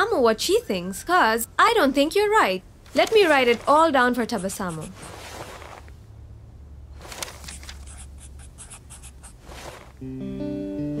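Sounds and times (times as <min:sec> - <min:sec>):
pen scratching on paper: 0:03.0 - 0:05.6, 0:07.5 - 0:09.9
plucked string music: 0:10.0 - 0:11.0.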